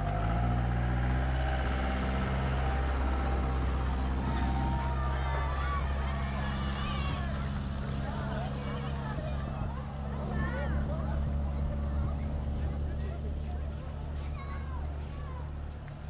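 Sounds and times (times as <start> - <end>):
engine idling: 0.0 - 16.0
faint voices: 0.0 - 16.0.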